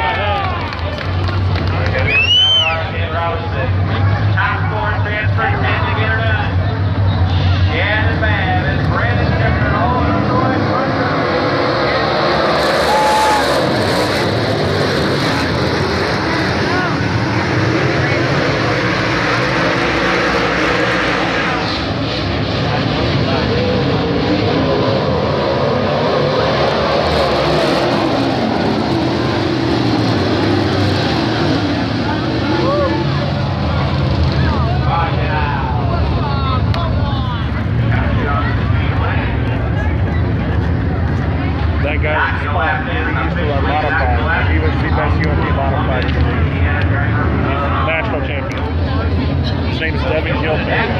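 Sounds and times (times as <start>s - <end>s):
race car engines passing: 0.0s - 50.9s.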